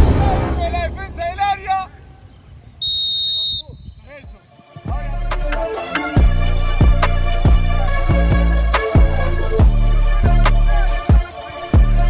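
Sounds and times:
whistle blast: 0:02.8 - 0:04.1.

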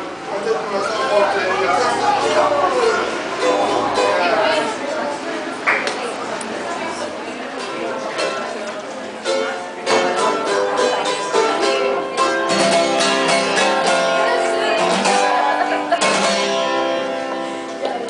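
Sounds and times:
mandolin strummed: 0:00.0 - 0:18.0
acoustic guitar strummed: 0:00.7 - 0:05.2, 0:07.5 - 0:17.8.

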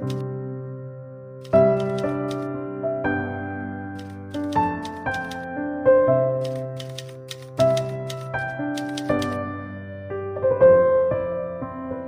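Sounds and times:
typewriter key clicks: 0:00.0 - 0:00.2, 0:01.4 - 0:02.5, 0:04.0 - 0:05.4, 0:06.4 - 0:09.4.

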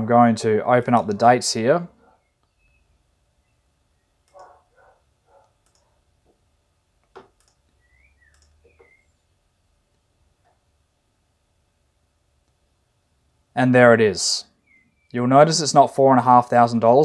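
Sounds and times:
faint computer mouse clicks: 0:04.2 - 0:04.6, 0:05.5 - 0:05.9, 0:07.0 - 0:09.0.

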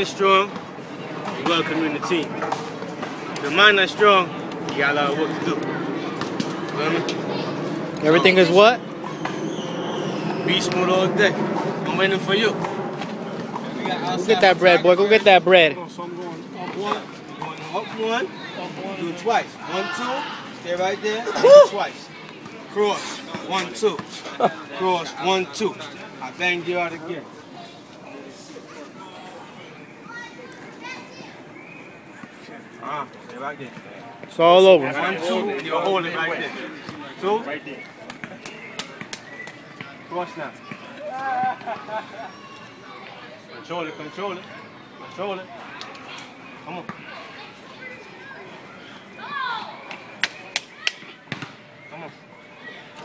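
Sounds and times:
scattered chatter: 0:00.0 - 0:53.0
children playing: 0:04.2 - 0:33.1, 0:33.7 - 0:53.0
high falling shout: 0:21.3 - 0:21.8.

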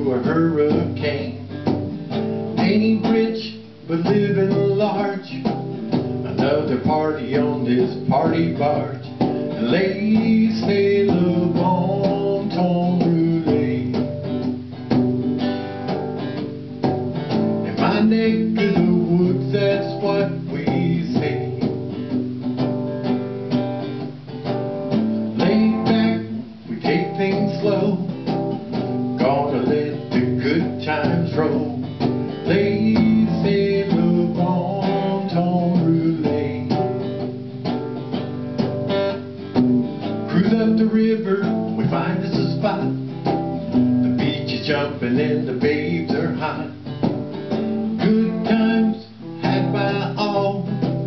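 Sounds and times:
strummed acoustic guitar: 0:00.0 - 0:51.0.

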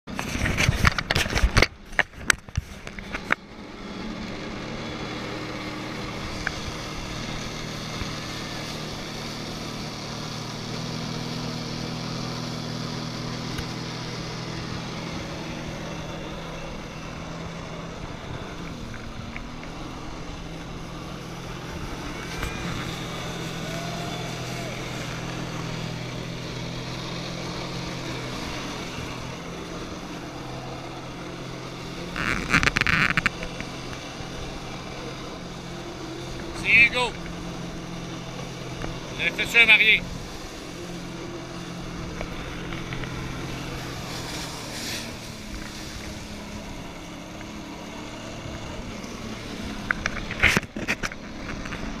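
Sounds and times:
jet ski engine running: 0:00.1 - 0:52.0
water jets hissing: 0:33.6 - 0:49.8.

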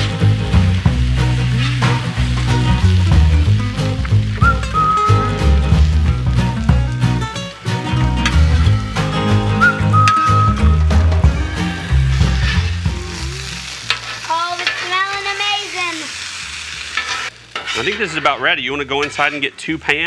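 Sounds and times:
vegetables sizzling on a griddle: 0:00.0 - 0:10.1, 0:11.0 - 0:20.0
background music with bass: 0:00.0 - 0:13.8
metal spatulas scraping: 0:11.8 - 0:12.9, 0:13.7 - 0:15.1, 0:16.9 - 0:19.6.

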